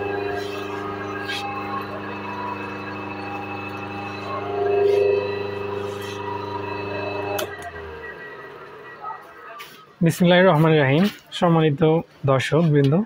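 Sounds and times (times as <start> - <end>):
electric motor humming: 0.0 - 9.2
motor winding down: 0.0 - 9.7.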